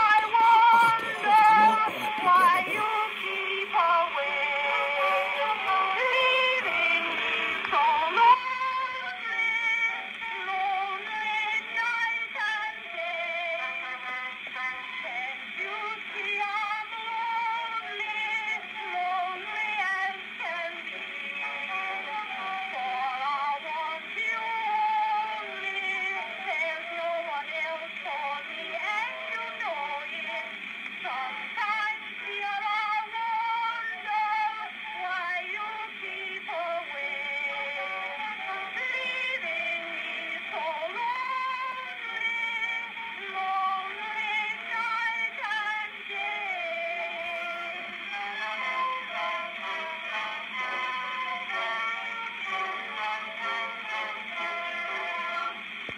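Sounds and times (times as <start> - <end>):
woman singing on phonograph record: 0.0 - 55.9.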